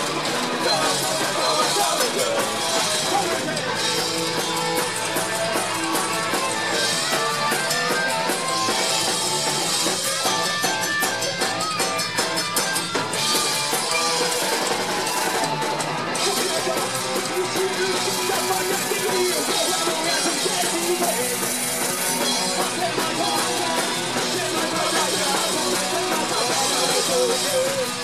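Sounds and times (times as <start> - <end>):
busy drum kit: 0.0 - 28.0
loud electric guitars: 0.0 - 28.0.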